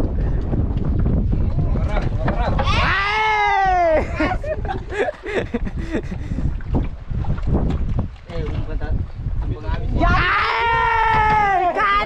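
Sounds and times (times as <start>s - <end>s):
wind buffeting microphone: 0.0s - 12.0s
man shouting: 2.6s - 4.3s, 10.0s - 12.0s.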